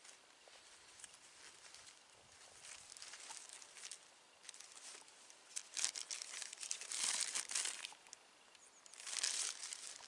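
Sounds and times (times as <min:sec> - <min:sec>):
bandage wrapping crinkling: 0:02.6 - 0:08.2, 0:08.9 - 0:10.0.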